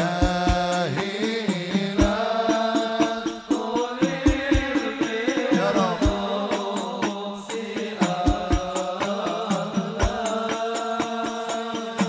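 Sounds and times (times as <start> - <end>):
frame drums beating: 0.0 - 12.0.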